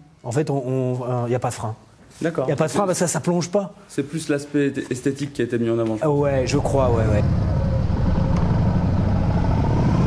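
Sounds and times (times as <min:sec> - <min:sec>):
motorcycle engine running: 0:06.2 - 0:10.0.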